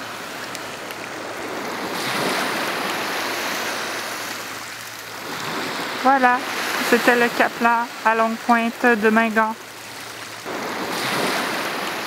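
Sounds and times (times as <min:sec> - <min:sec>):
surf washing onto gravel beach: 0:00.0 - 0:12.0.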